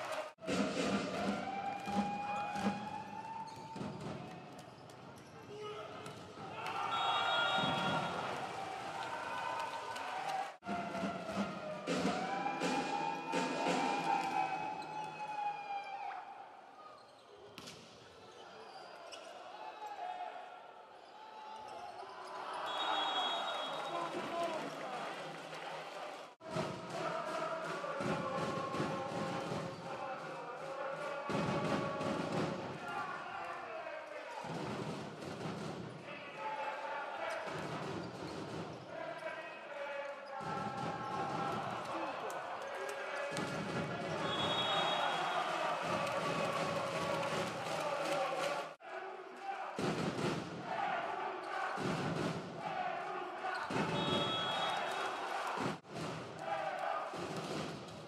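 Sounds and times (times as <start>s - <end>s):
crowd voices and clapping: 0.0s - 16.8s, 19.2s - 58.0s
referee's whistle: 6.7s - 8.3s, 22.6s - 24.2s, 43.6s - 45.6s, 53.6s - 55.2s.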